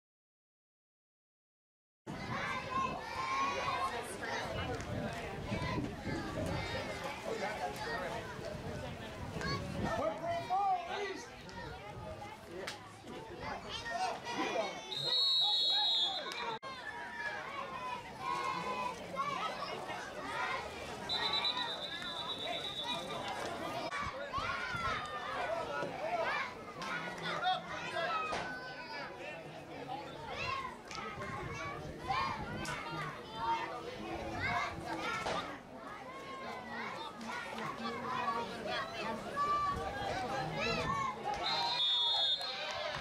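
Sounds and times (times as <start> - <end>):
spectators' voices and shouts: 2.1 - 43.0
referee's whistle blast: 14.9 - 16.5, 21.1 - 23.1, 41.4 - 42.6.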